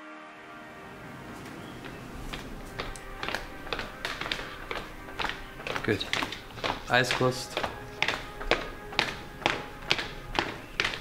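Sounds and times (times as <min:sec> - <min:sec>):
background music: 0:00.0 - 0:11.0
sharp tapping beat: 0:01.8 - 0:11.0.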